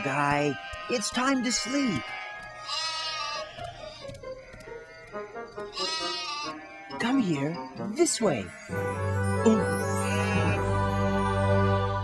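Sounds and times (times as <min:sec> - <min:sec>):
cartoon sheep bleating: 0:00.1 - 0:04.0, 0:05.7 - 0:06.9, 0:10.0 - 0:10.6
soft background music: 0:03.6 - 0:12.0.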